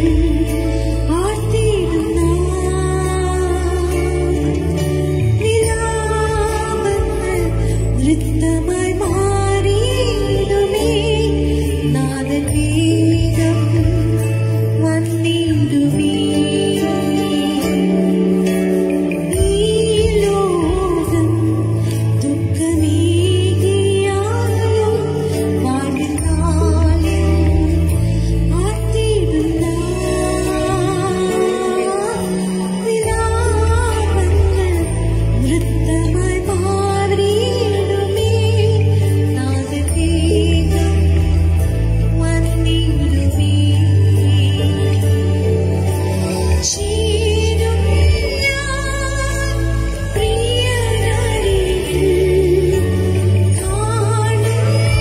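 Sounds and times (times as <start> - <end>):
woman singing gospel song: 0.0 - 4.7, 19.3 - 45.4
backing music: 0.0 - 55.0.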